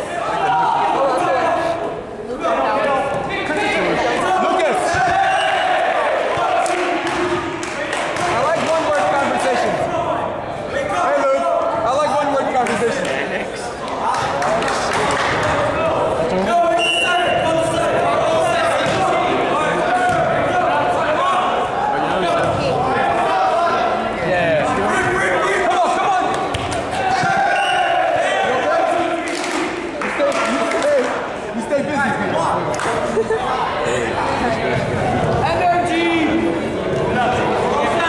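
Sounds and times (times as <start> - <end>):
players shouting in gymnasium: 0.0 - 12.6, 13.7 - 32.1.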